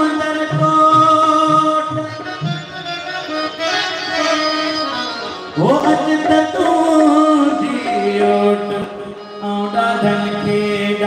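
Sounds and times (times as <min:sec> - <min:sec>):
harmonium: 0:00.0 - 0:11.0
person singing: 0:05.6 - 0:11.0.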